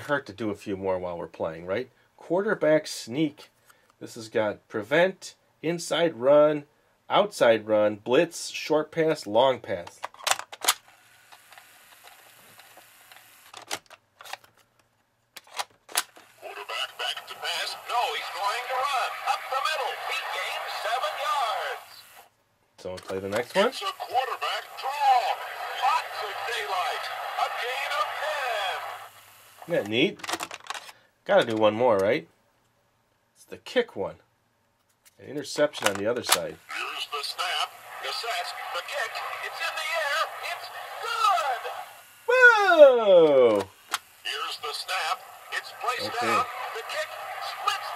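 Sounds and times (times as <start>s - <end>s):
steady noisy background: 16.0s - 22.3s, 23.4s - 30.7s, 36.5s - 42.8s, 43.5s - 47.9s
recorded announcer calling a play: 16.4s - 22.2s, 22.8s - 30.2s, 35.3s - 47.9s.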